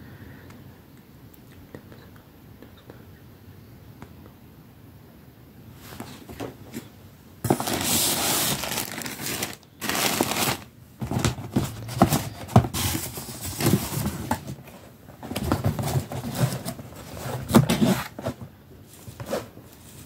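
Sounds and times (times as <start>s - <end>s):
plastic packaging crinkling: 7.4s - 14.6s.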